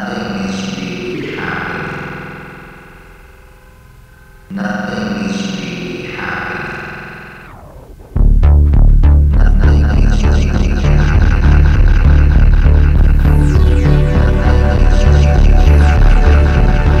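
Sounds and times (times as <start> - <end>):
distorted guitar chord: 1.4 - 17.0.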